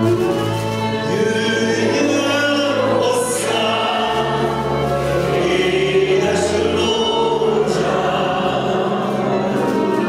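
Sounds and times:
clarinet: 0.0s - 10.0s
man and woman singing duet: 0.0s - 10.0s.

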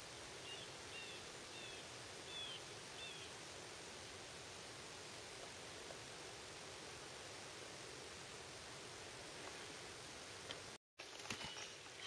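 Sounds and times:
steady faint hiss: 0.0s - 12.0s.

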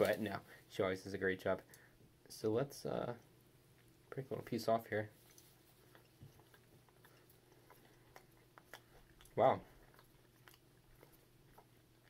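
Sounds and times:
faint chewing: 5.1s - 12.0s.

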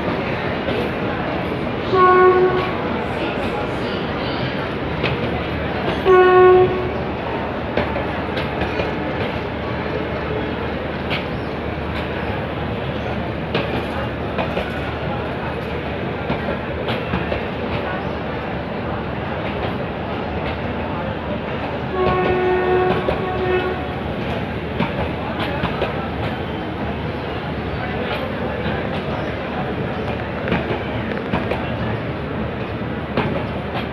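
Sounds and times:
train rumbling on rails: 0.0s - 33.9s
locomotive horn: 1.9s - 2.8s, 6.0s - 7.0s, 21.9s - 24.0s.

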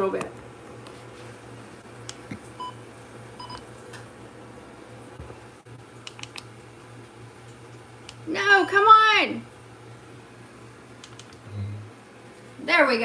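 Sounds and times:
low steady hum: 0.0s - 13.0s
handling clicks: 6.1s - 6.5s, 11.0s - 11.4s.

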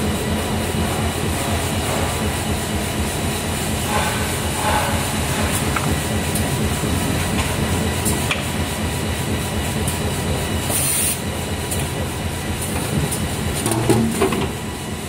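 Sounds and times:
machine mechanical din: 0.8s - 8.5s.

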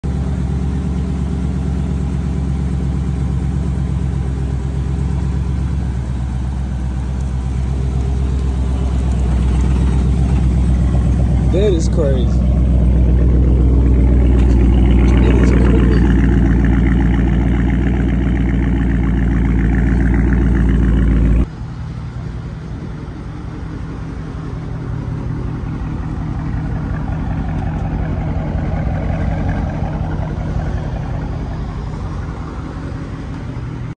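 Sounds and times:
car engine idling: 0.0s - 34.0s.

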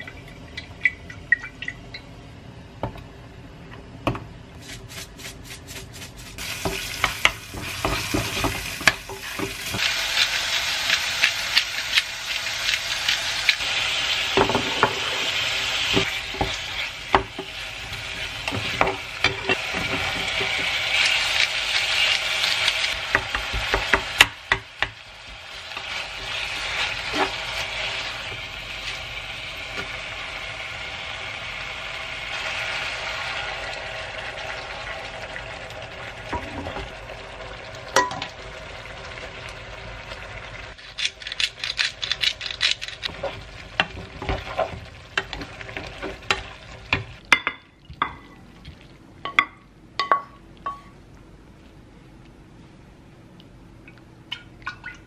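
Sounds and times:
food sizzling in a pan: 4.6s - 40.8s, 42.9s - 47.3s.

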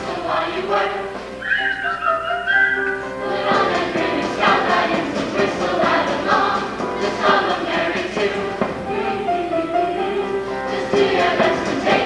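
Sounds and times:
choir singing over instrumental backing: 0.0s - 12.0s.

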